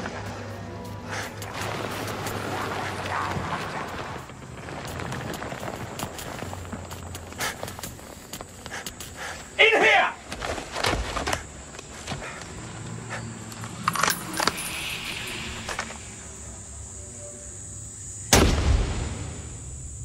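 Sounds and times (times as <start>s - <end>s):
person shouting: 9.6s - 10.2s.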